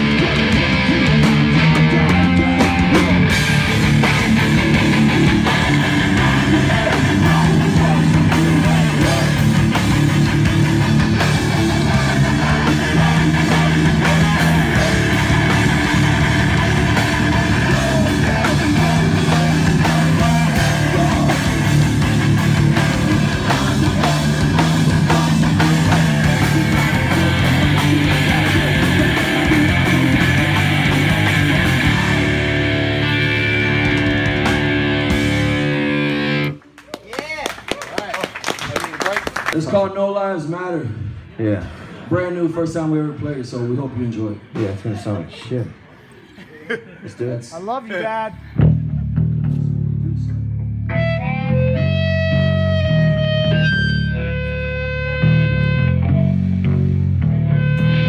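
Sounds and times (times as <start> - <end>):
punk band playing live: 0.0 - 36.8, 48.4 - 58.0.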